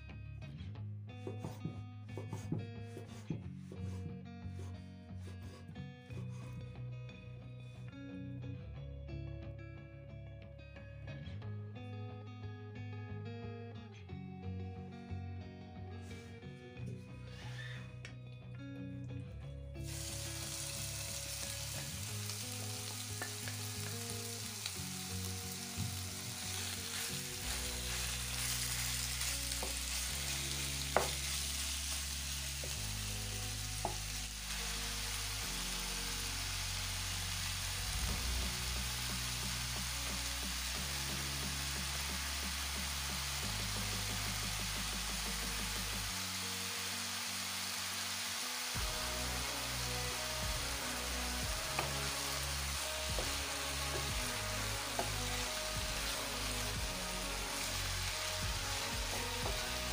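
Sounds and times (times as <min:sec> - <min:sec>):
chicken sizzling in hot oil: 0:19.8 - 0:59.9.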